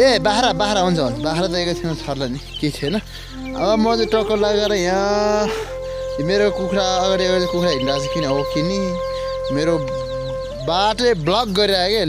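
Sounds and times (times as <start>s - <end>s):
hen clucking: 0.0s - 11.4s
background music: 0.0s - 12.0s.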